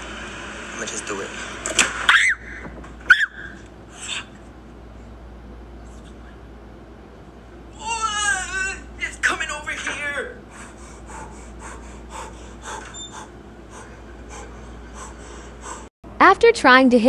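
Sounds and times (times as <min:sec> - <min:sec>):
woman crying out in fright: 0:07.8 - 0:08.9.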